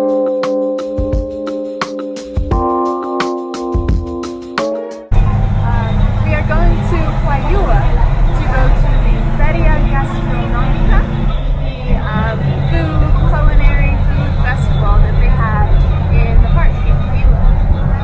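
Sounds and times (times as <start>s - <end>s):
bus engine drone: 5.1s - 18.0s.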